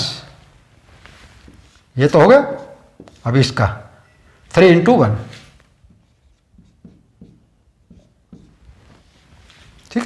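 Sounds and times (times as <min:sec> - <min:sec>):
marker writing on whiteboard: 0:02.4 - 0:03.5, 0:05.8 - 0:09.2.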